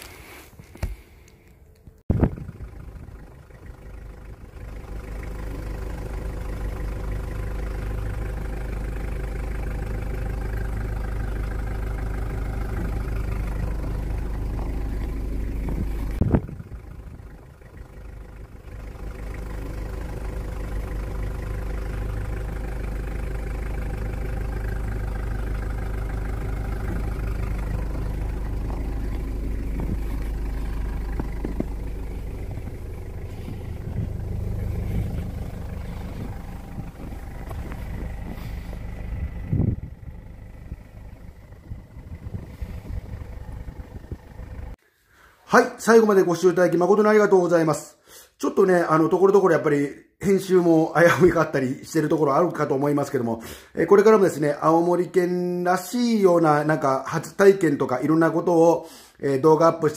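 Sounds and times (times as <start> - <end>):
car engine idling: 0.0 - 47.3.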